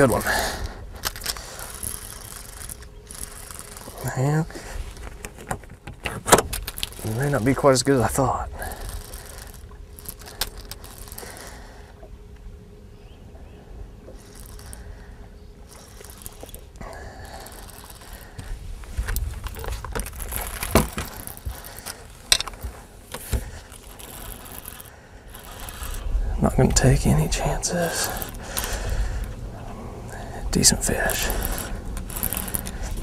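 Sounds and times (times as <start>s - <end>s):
low rumble: 6.5s - 33.0s.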